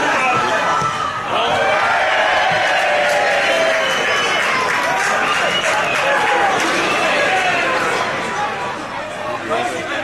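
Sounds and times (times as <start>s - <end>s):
football crowd shouting and cheering: 0.0s - 10.0s.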